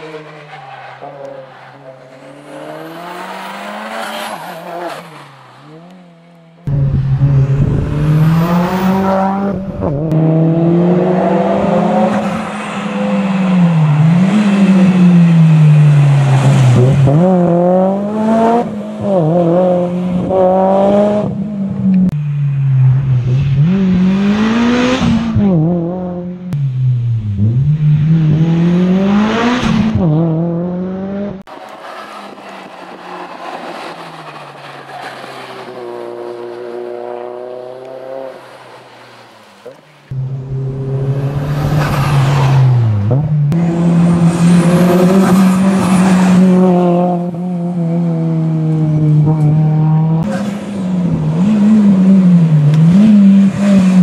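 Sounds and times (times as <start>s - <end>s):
rally car engine revving: 0.0s - 22.2s, 22.8s - 39.0s, 39.6s - 54.0s.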